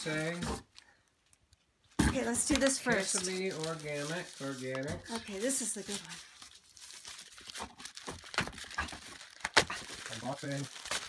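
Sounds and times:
plastic bag crinkling: 0:02.3 - 0:11.0.

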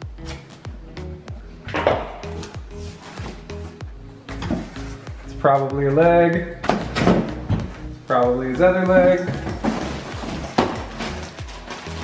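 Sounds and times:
background music: 0:00.0 - 0:12.0
plastic bag crinkling: 0:09.4 - 0:12.0.

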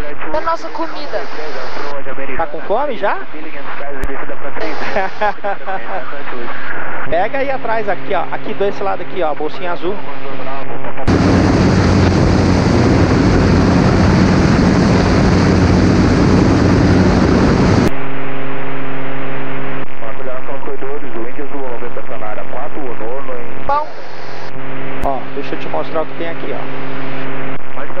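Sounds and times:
aircraft cabin noise rush: 0:11.1 - 0:17.9
low engine hum: 0:11.1 - 0:17.9.

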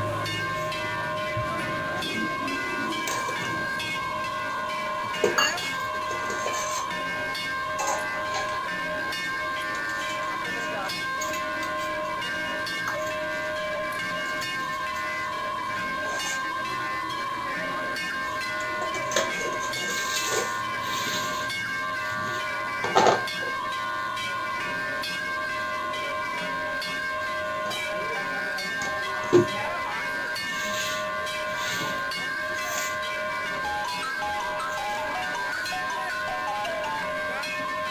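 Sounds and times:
drone of held tones: 0:00.0 - 0:37.9
temple bells ringing: 0:00.0 - 0:37.9.

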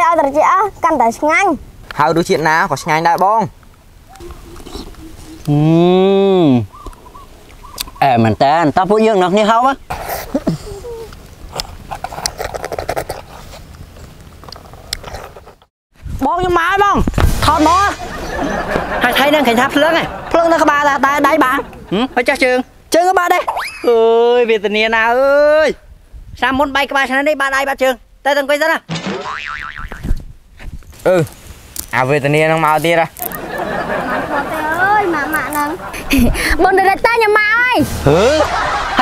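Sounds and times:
children slurping and smacking: 0:09.9 - 0:13.4
cartoon boing: 0:28.9 - 0:30.1.

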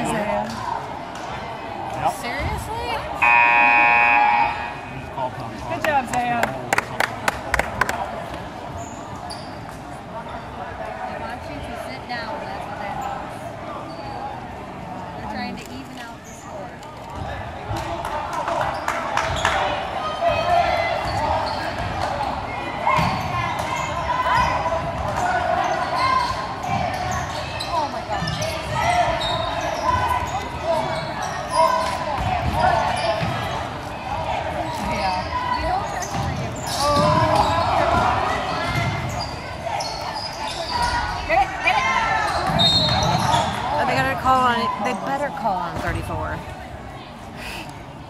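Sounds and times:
spectator chatter and shouts: 0:00.0 - 0:48.0.

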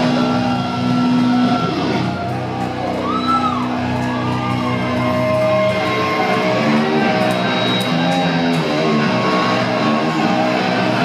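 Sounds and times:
distorted electric guitar: 0:00.0 - 0:11.0
heavy metal band playing live: 0:00.0 - 0:11.0.

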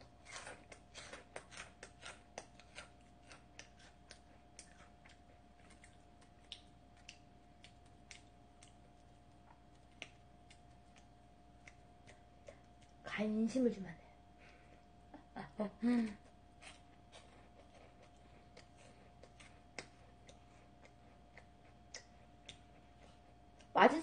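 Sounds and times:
crisps crunching while chewed: 0:00.0 - 0:13.0, 0:16.6 - 0:23.7.

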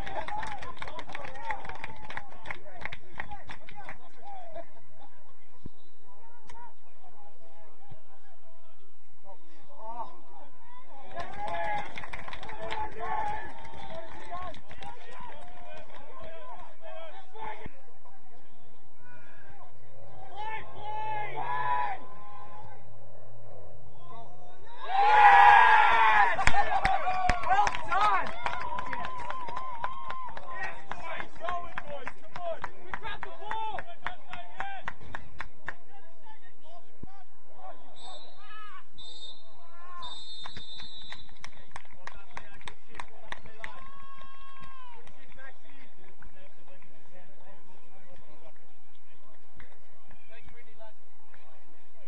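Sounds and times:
sharp claps: 0:00.0 - 0:04.1, 0:26.4 - 0:35.8, 0:40.4 - 0:45.5
steady low hum: 0:16.1 - 0:28.3
players shouting: 0:20.1 - 0:22.7, 0:24.4 - 0:34.8
long held shout: 0:24.8 - 0:28.3
referee's whistle blasts: 0:38.0 - 0:41.4.

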